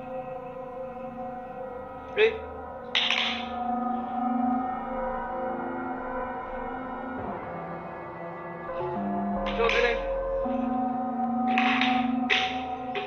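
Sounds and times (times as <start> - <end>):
eerie ambient drone music: 0.0 - 13.0.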